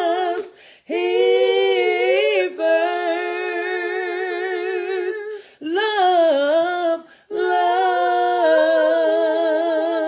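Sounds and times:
woman singing a cappella: 0:00.0 - 0:10.0
woman breathing in: 0:00.5 - 0:00.9, 0:05.3 - 0:05.6.

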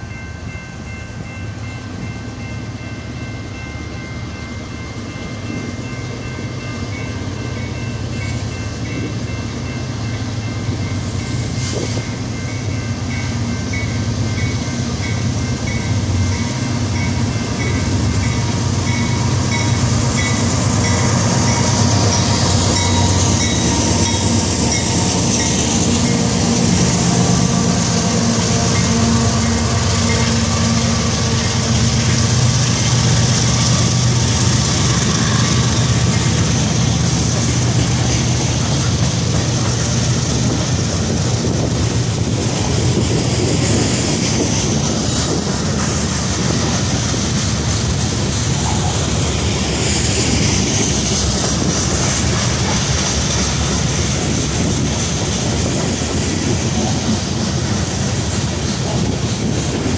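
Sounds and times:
diesel locomotives passing: 0:00.0 - 0:59.9
train wheels clattering over rail joints: 0:14.3 - 0:59.9.

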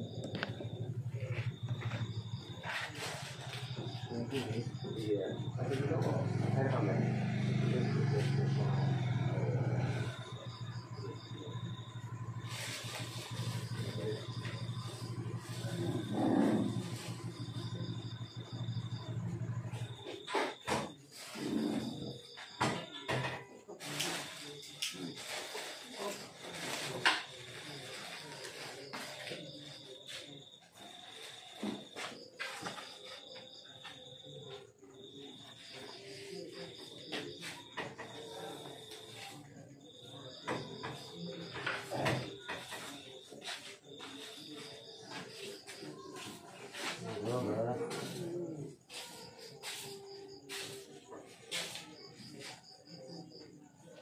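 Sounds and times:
crickets trilling: 0:00.0 - 0:54.0
faint voices: 0:00.0 - 0:54.0.

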